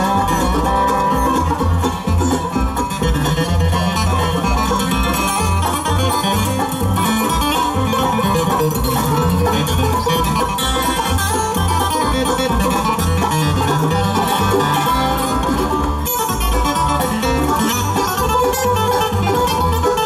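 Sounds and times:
acoustic guitar: 0.0 - 20.0
banjo: 0.0 - 20.0
dobro: 0.0 - 20.0
mandolin: 0.0 - 20.0
upright bass: 0.0 - 20.0.

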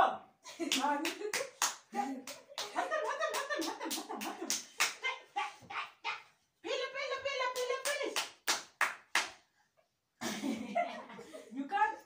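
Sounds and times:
sharp hand claps: 0.7 - 5.0, 7.6 - 9.4.

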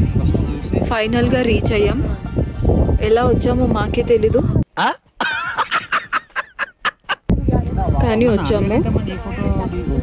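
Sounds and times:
music with a voice: 0.0 - 4.6, 7.4 - 10.0
man laughing loudly: 4.8 - 7.3.

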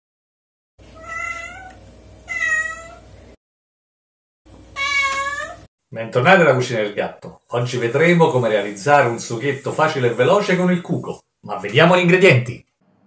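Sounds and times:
cat meowing: 1.0 - 3.1, 4.8 - 5.7.

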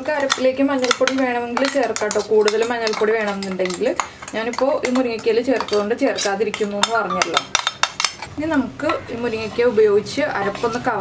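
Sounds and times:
woman talking: 0.0 - 7.6, 8.3 - 11.0
spoon scraping a grinder jar: 0.0 - 11.0.

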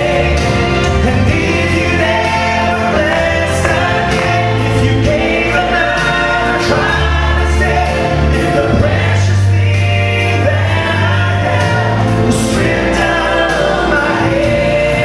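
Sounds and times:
instrumental accompaniment: 0.0 - 15.0
low bass line: 0.0 - 15.0
vocal trio singing gospel: 0.0 - 15.0.

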